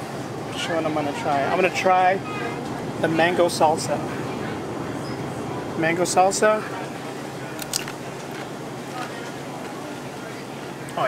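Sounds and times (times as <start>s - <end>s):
steady background hum: 0.0s - 11.0s.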